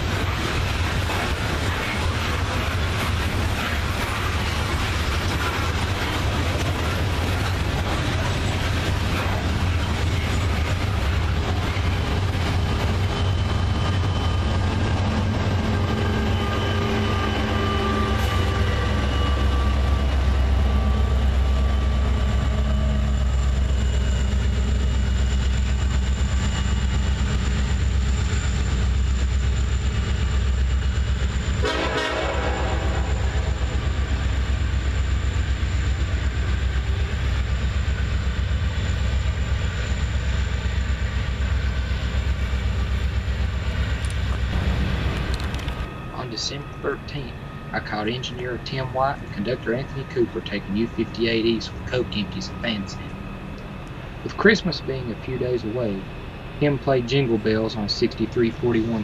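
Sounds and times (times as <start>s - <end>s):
coal cars rolling: 0.0s - 59.0s
diesel locomotives droning: 0.0s - 59.0s
train horn blast: 16.0s - 19.8s, 31.6s - 33.6s.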